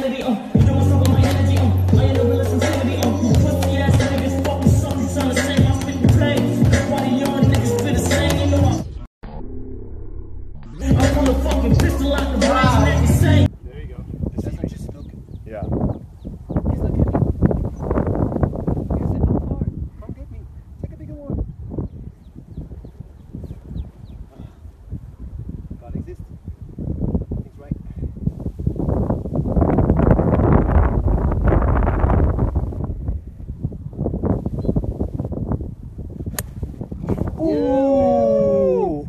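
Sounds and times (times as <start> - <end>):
wind buffeting microphone: 13.2 - 39.0
golf club striking ball: 36.3 - 36.6.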